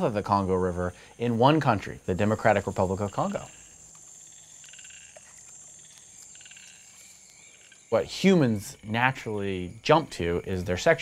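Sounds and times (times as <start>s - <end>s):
faint high-pitched hum: 0.0s - 11.0s
frogs trilling: 0.0s - 11.0s.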